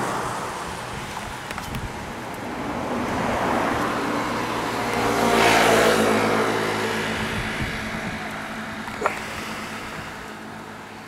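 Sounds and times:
road noise: 0.0s - 11.0s
vehicle engine hum: 0.0s - 11.0s.

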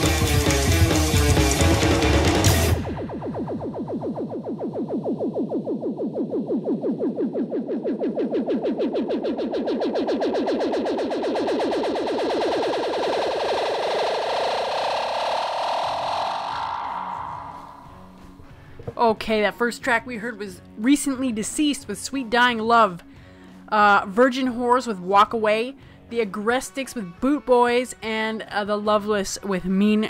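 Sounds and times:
punk rock band playing: 0.0s - 2.8s
pulsing sweeping effect sound: 0.0s - 18.6s.

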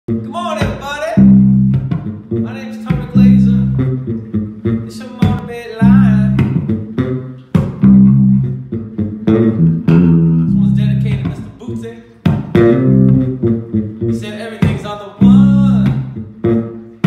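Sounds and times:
electric bass guitar riff: 0.1s - 17.0s.

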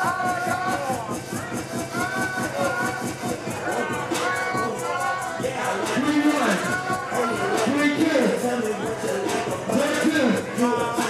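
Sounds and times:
dance music beat: 0.0s - 11.0s
man chanting into a microphone: 5.4s - 11.0s.

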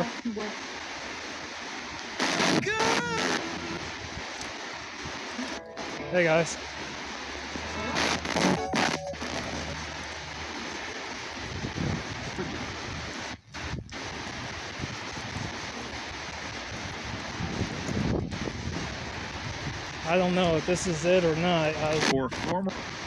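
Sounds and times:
radio static hiss: 0.0s - 23.0s.

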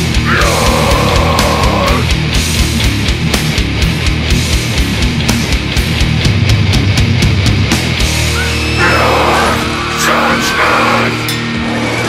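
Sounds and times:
distorted guitars low chords: 0.0s - 12.0s.

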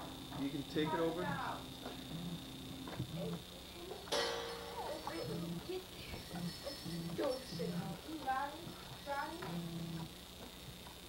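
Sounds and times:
high-pitched whine: 0.0s - 10.1s.

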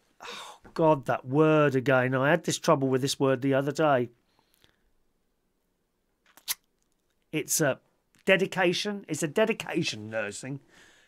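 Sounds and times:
lip smack: 6.3s - 7.0s
mouth clicks: 6.3s - 7.0s
person speaking: 7.3s - 10.7s.

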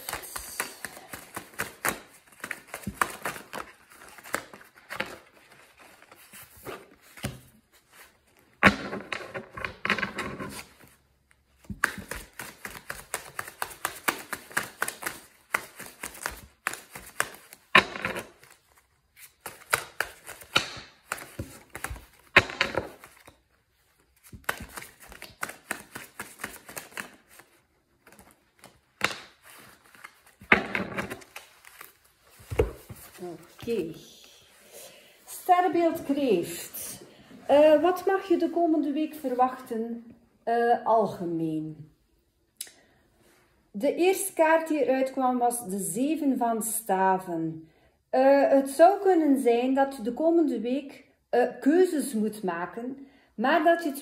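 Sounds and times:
cards being shuffled by hand: 0.0s - 34.0s.

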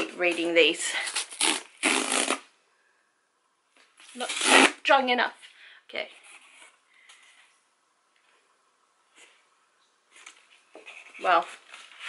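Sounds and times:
cardboard rustling and scraping: 10.1s - 12.0s.

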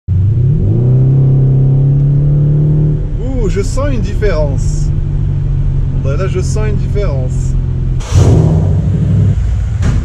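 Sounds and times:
car engine accelerating: 0.1s - 10.0s.

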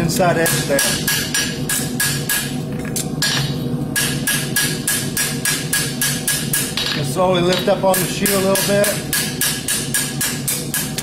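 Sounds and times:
hammer striking horseshoe on anvil: 0.4s - 2.5s, 3.2s - 11.0s.

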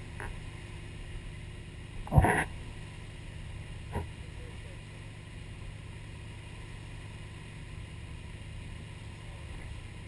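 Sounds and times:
boat engine drone: 0.0s - 10.0s.

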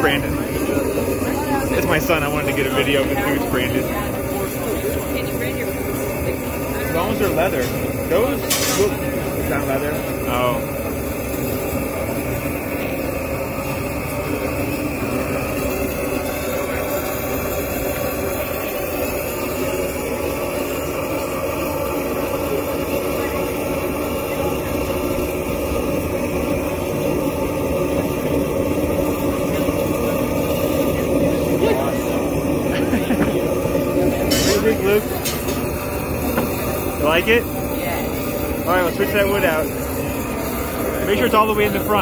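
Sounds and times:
loud machine drone: 0.0s - 42.0s
indistinct voices: 28.1s - 42.0s.

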